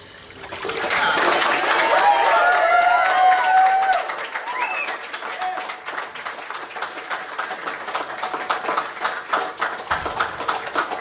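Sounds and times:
congregation clapping and cheering: 0.4s - 11.0s.

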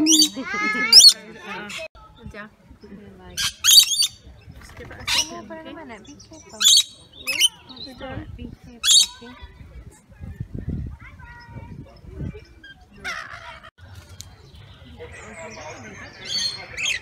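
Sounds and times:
lorikeets screeching and chattering: 0.0s - 9.4s, 11.3s - 13.7s, 14.5s - 17.0s.

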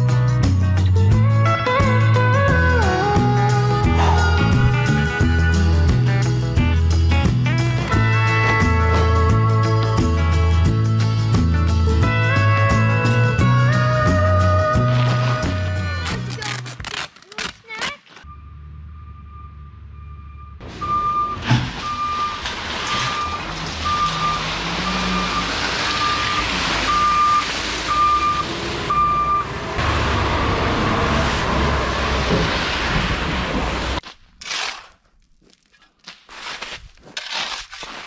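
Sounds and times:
dump truck engine running: 0.0s - 16.5s, 18.3s - 34.0s
backup alarm beeping: 18.2s - 29.5s
gravel pouring: 21.7s - 27.8s.

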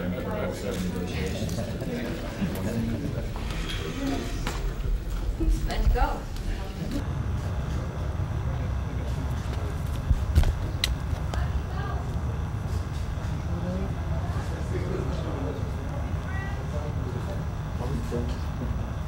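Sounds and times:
murmur of voices: 0.0s - 19.0s
steady low rumble: 2.9s - 14.3s.

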